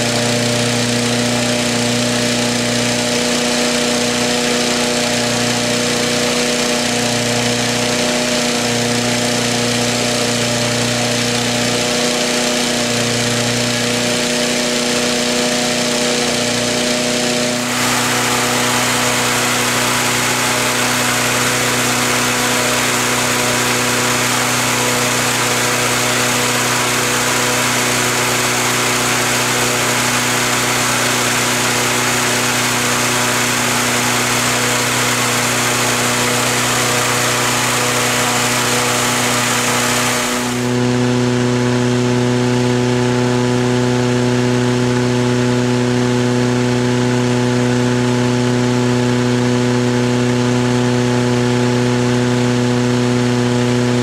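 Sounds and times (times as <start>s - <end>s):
petrol engine fan running: 0.0s - 54.0s
rush of air from fan: 17.3s - 41.1s.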